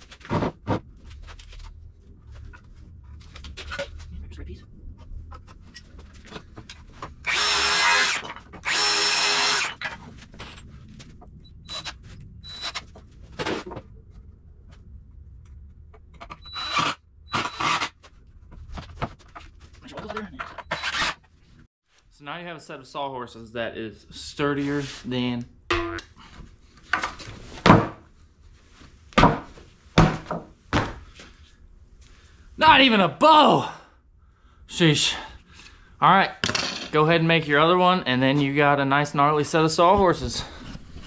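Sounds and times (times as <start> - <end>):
screw gun driving screws: 7.2 - 10.0, 16.4 - 17.9, 20.6 - 21.2.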